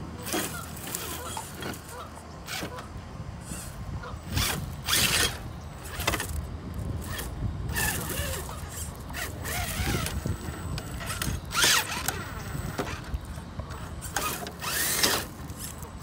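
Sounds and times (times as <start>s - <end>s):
electric motor whirring: 3.4s - 15.8s
tyres scraping on stone: 13.8s - 16.0s.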